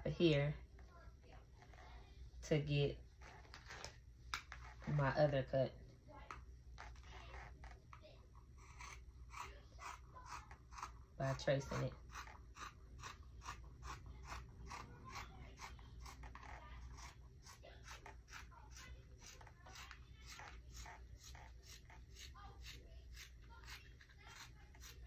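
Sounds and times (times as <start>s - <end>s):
scissors snipping fabric: 8.6s - 25.0s.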